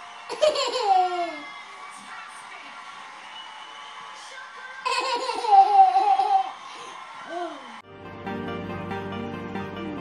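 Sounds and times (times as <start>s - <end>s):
toddler laughing: 0.3s - 1.4s, 4.9s - 6.5s.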